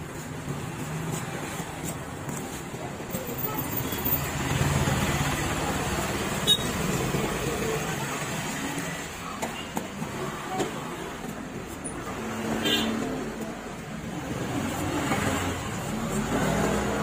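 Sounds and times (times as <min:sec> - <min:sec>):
market noise: 0:00.0 - 0:17.0
traffic noise: 0:00.0 - 0:17.0.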